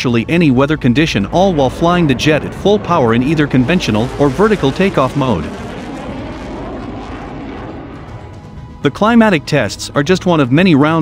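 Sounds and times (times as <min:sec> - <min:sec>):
jet engine in afterburner: 0:00.2 - 0:09.5.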